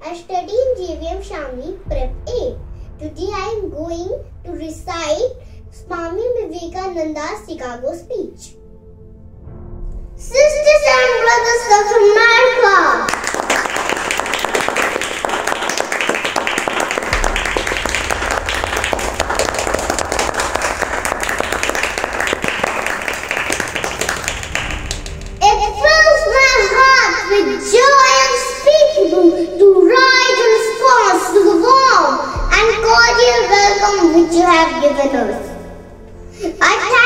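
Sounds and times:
boy giving speech: 0.0s - 8.6s, 10.2s - 13.2s, 25.4s - 35.7s, 36.4s - 37.0s
crowd applause: 13.1s - 25.4s.

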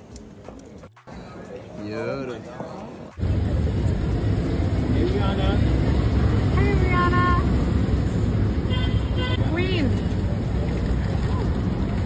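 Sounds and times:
low traffic rumble: 2.4s - 12.0s.

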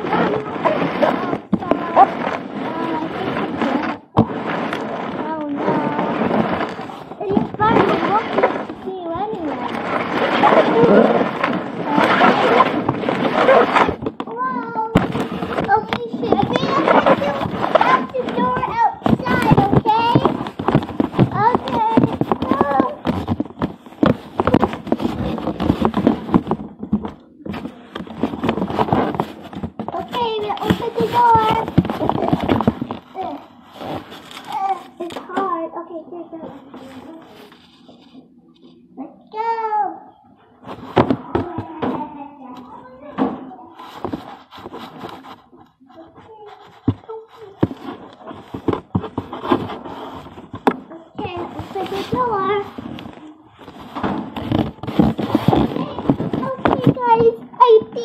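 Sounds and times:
child talking and vocalizing: 0.0s - 23.2s, 29.8s - 33.6s, 34.4s - 37.6s, 38.8s - 44.2s, 45.8s - 48.5s, 50.7s - 53.5s, 54.8s - 58.0s.

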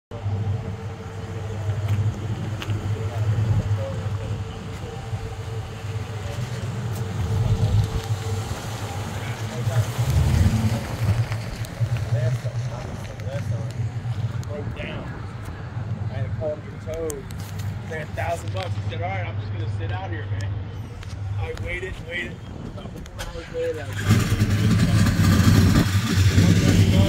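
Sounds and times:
car engine running: 0.1s - 18.6s, 23.3s - 27.0s
faint voices: 0.1s - 27.0s.

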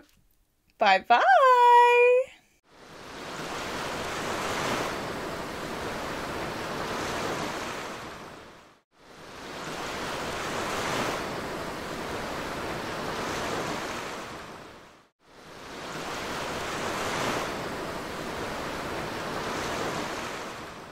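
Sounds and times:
ocean waves washing: 2.7s - 20.9s.

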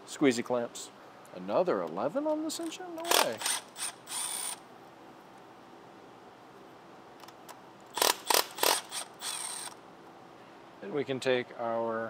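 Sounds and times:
ratchet wrench clicking: 3.0s - 4.6s, 7.9s - 9.8s.

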